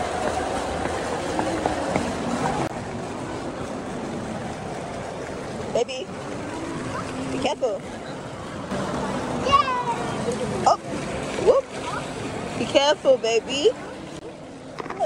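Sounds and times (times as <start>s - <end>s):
fountain water splashing: 0.0s - 15.0s.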